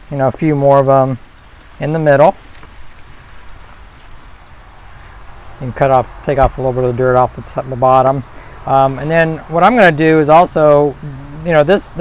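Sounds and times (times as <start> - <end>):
low handling rumble: 1.4 - 12.0
soil crumbling and pattering: 2.1 - 10.6.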